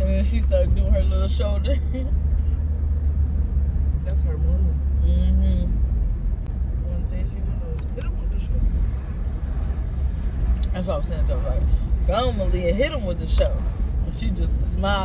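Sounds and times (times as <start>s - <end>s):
car interior rumble: 0.0s - 15.0s.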